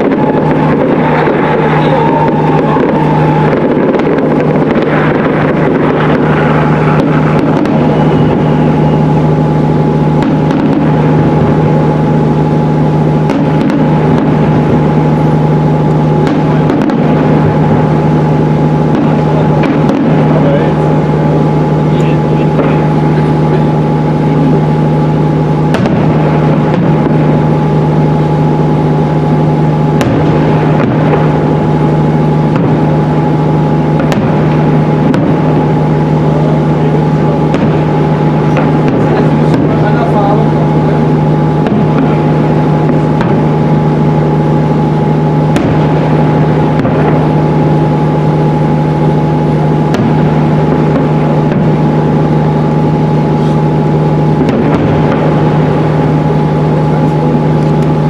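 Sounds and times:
people talking: 0.0 - 5.1, 19.0 - 25.4, 35.6 - 43.4, 56.2 - 58.0
firework bangs: 0.0 - 58.0
motor drone: 0.0 - 58.0.

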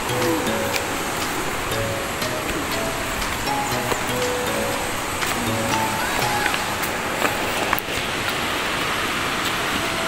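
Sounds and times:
waterfall roaring: 0.0 - 10.0.

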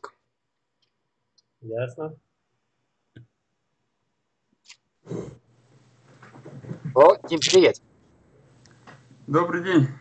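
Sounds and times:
person speaking: 6.3 - 7.9.

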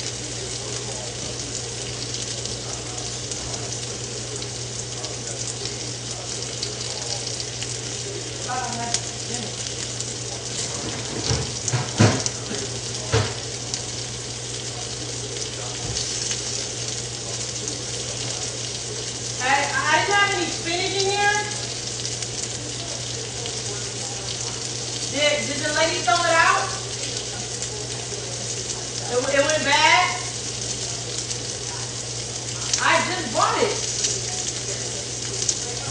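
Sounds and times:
food sizzling in a frying pan: 0.0 - 35.9
person's voice: 17.6 - 21.7, 25.1 - 28.2, 28.9 - 30.3, 32.6 - 34.9.

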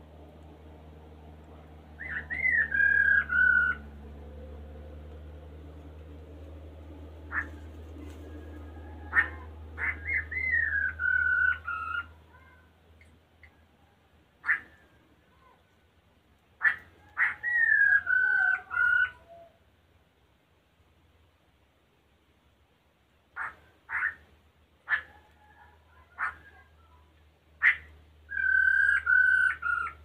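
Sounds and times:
low steady hum: 0.0 - 30.0
bird calling: 2.0 - 4.0, 7.2 - 13.1, 14.4 - 15.6, 16.6 - 19.6, 23.3 - 24.3, 27.6 - 30.0.

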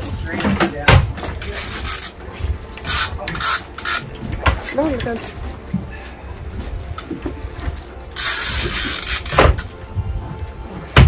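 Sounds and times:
wind rumble: 4.1 - 10.7.

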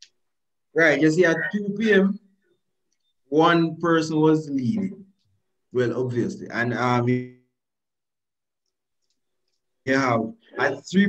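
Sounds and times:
faint clicks: 8.6 - 9.8.

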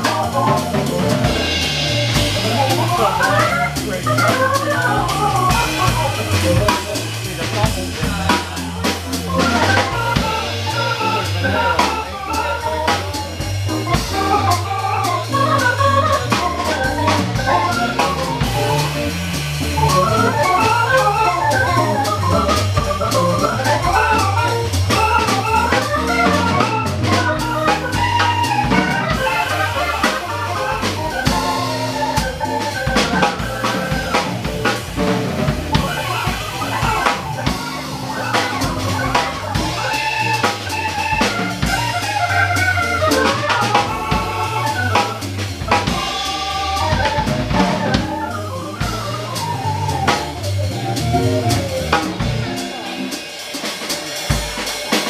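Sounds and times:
bass line: 0.0 - 54.8
drum kit on cymbals and snare: 0.0 - 55.0
electric guitar: 0.0 - 55.0
jazz organ melody: 0.0 - 55.0.

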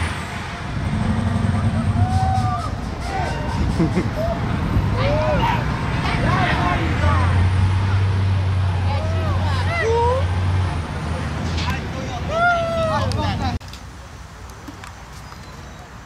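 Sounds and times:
crowd talking: 0.0 - 14.0
large vehicle engine rumble: 0.0 - 14.9.

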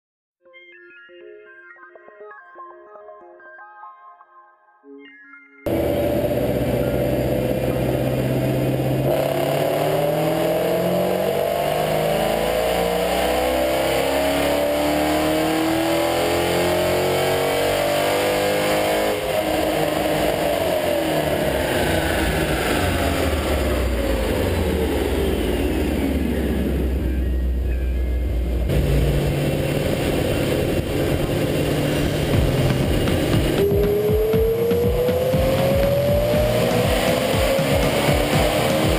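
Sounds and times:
high supercharger whine: 5.7 - 38.9
supercharged engine revving: 5.7 - 38.9.

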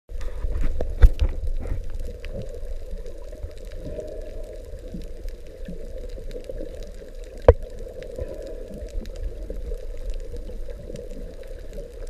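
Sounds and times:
underwater low rumble and hum: 0.1 - 12.0
sharp underwater clicks and knocks: 0.2 - 2.5, 7.4 - 7.7.

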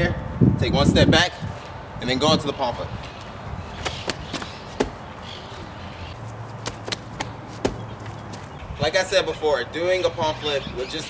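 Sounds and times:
feet landing on grass: 3.2 - 8.6
hands slapping a wall: 3.8 - 5.0, 6.6 - 8.5.

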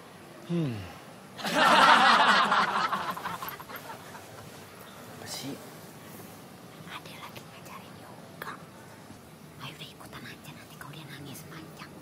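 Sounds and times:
person whispering: 9.6 - 12.0.

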